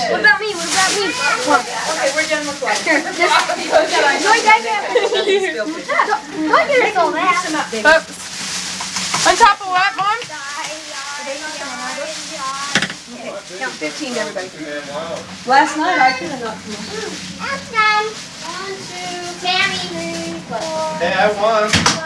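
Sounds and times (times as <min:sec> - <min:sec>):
people talking over each other: 0:00.0 - 0:21.8
hissing rustling noise: 0:00.2 - 0:21.8.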